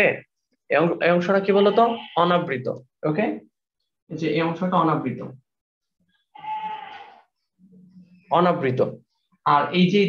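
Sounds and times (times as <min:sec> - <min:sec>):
marker squeaking on whiteboard: 0:06.0 - 0:08.3.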